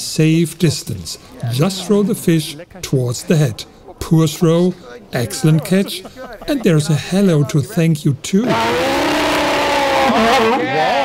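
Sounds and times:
sea lion roaring: 0:08.4 - 0:11.0.

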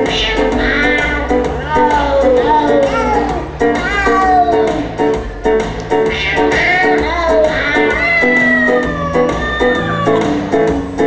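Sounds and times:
meow-like cat calls: 0:06.2 - 0:10.4.

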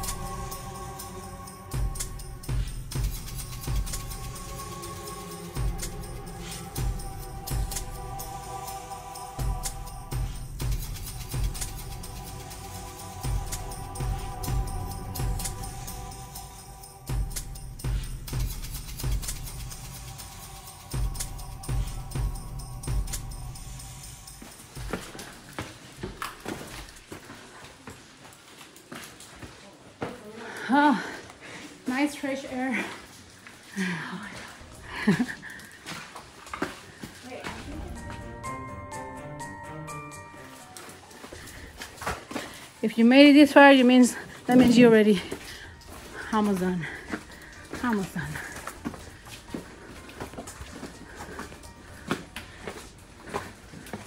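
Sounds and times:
footsteps on rocky floor: 0:24.1 - 0:31.6, 0:32.7 - 0:38.4, 0:40.4 - 0:54.0.

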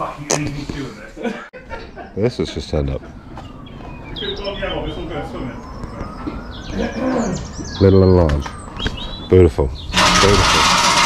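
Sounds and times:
birds chirping: 0:00.0 - 0:10.5.

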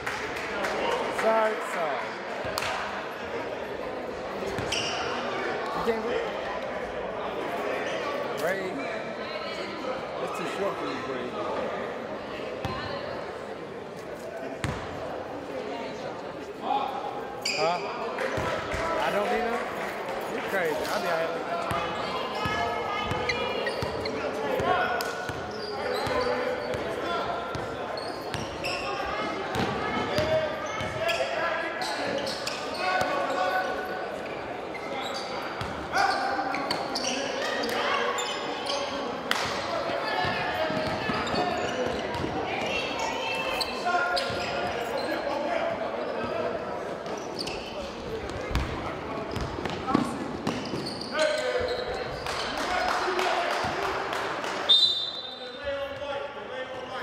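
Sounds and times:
basketball bouncing on court: 0:14.6 - 0:14.9, 0:29.5 - 0:31.0, 0:40.3 - 0:42.4, 0:48.3 - 0:50.9.

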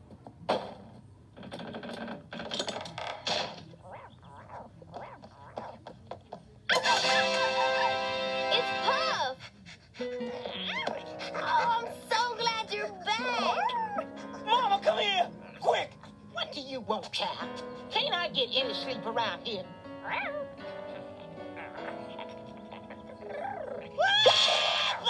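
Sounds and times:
music with held chords: 0:06.7 - 0:09.2, 0:17.3 - 0:24.1
cartoon character voices: 0:10.6 - 0:15.8.

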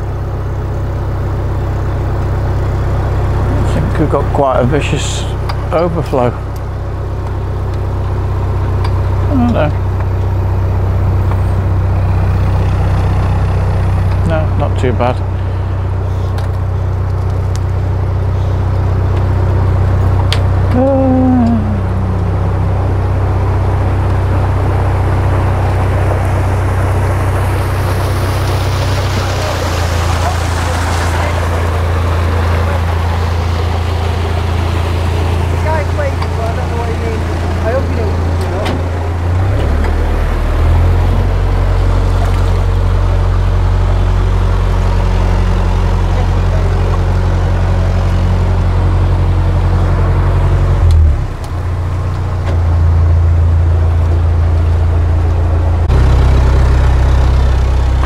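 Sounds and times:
boat diesel engine running: 0:00.0 - 0:58.0
water rushing from overflow: 0:20.7 - 0:48.5.

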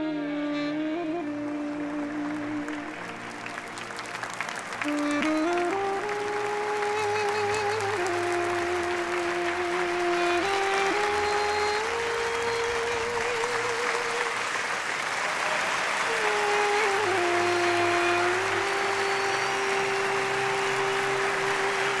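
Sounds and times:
slow music with held notes: 0:00.0 - 0:14.5, 0:16.2 - 0:22.0
audience applauding: 0:01.0 - 0:22.0.

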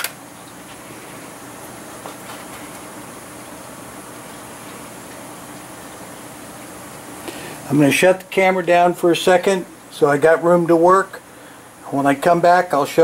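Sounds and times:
steady background hiss: 0:00.0 - 0:13.0.

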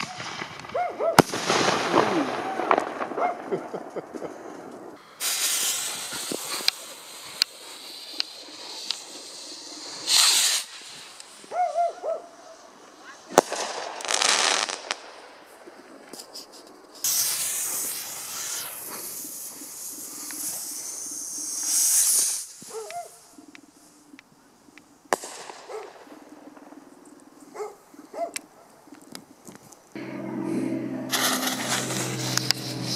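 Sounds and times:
firework cracks: 0:00.0 - 0:27.0, 0:31.1 - 0:32.9
dog barking: 0:00.8 - 0:01.2, 0:03.2 - 0:03.4, 0:11.5 - 0:12.4, 0:22.7 - 0:23.2, 0:25.7 - 0:25.9, 0:27.5 - 0:28.4
fireworks hissing: 0:03.8 - 0:24.2, 0:31.1 - 0:32.9.

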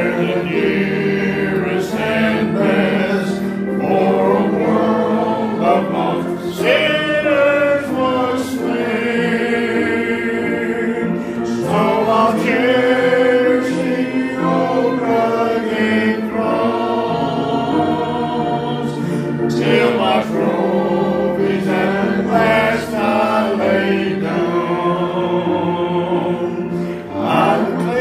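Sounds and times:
congregation singing a hymn: 0:00.0 - 0:28.0.

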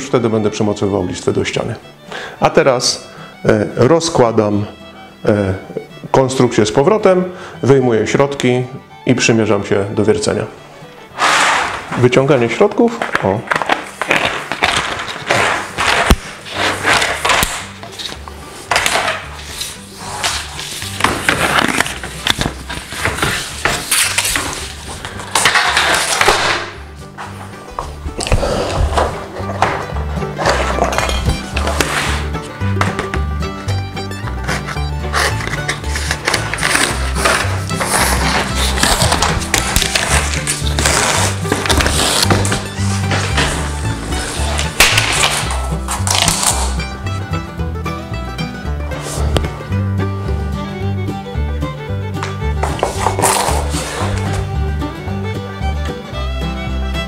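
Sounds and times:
background music with steady beat: 0:00.0 - 0:57.0
plastic scraping and clattering: 0:11.2 - 0:33.2, 0:34.2 - 0:46.9, 0:52.2 - 0:54.5.

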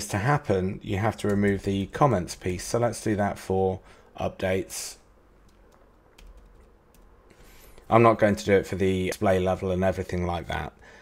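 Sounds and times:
computer keyboard clicks: 0:05.4 - 0:07.1.

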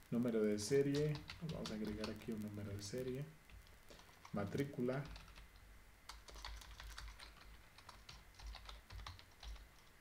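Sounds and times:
typing on computer keyboard: 0:00.9 - 0:02.4, 0:03.9 - 0:09.9.

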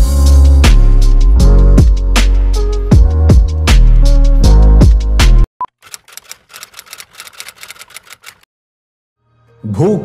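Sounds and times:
typewriter-like key clicks: 0:05.8 - 0:08.4.

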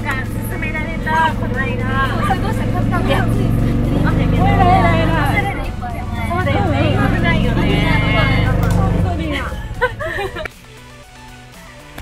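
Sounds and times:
women's voices: 0:00.0 - 0:10.5
golf cart rumbling: 0:00.0 - 0:10.6.

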